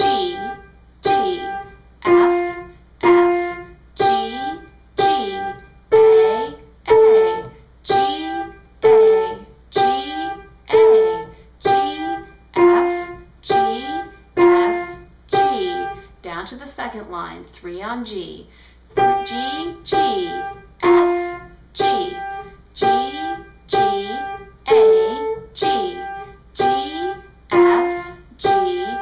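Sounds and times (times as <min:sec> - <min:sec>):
piano single notes: 0:00.0 - 0:16.1, 0:18.9 - 0:29.0.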